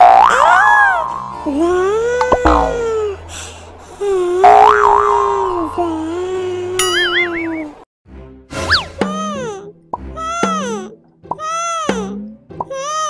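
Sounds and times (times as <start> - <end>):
springy wobbling boing: 2.2 - 3.1
held wavering tone: 2.2 - 3.2
background music: 8.1 - 13.0.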